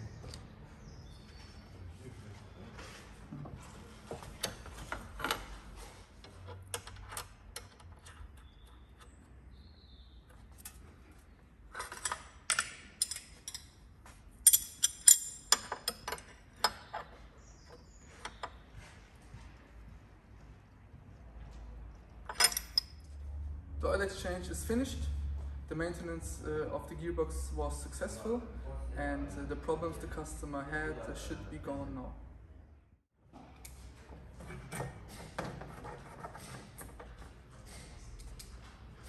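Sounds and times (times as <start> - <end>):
metal couplings and wrench clinking: 10.3 - 18.6, 22.2 - 23.2.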